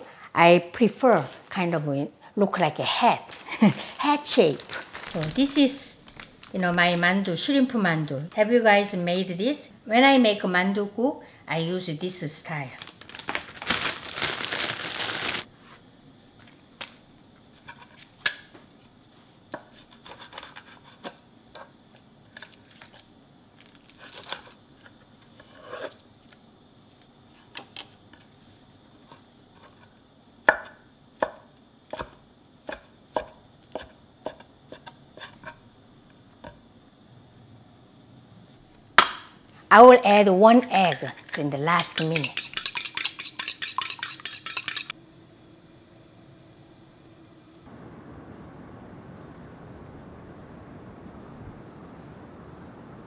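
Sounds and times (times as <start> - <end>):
plastic bag crinkling: 3.0 - 7.1, 12.7 - 15.5.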